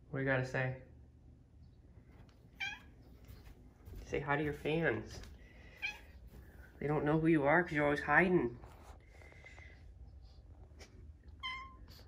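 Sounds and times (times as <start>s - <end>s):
cat meowing: 2.6s - 2.9s, 5.8s - 6.1s, 11.3s - 12.0s.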